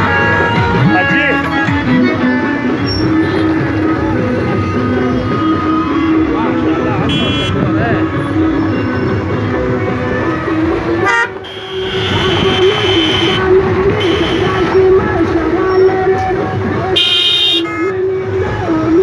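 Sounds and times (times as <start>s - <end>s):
car noise: 0.0s - 19.0s
voices: 0.0s - 19.0s
car horns honking: 7.0s - 7.6s, 11.0s - 14.8s, 16.9s - 18.0s.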